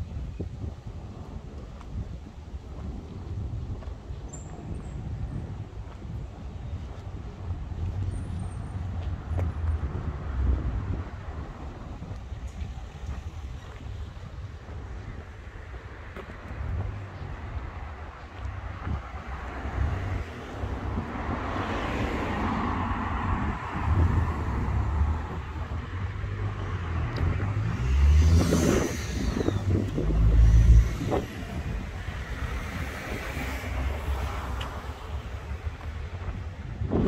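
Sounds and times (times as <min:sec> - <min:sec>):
wind rumbling on microphone: 0:00.0 - 0:37.0
cars passing: 0:04.5 - 0:37.0
car engine accelerating: 0:26.1 - 0:34.5.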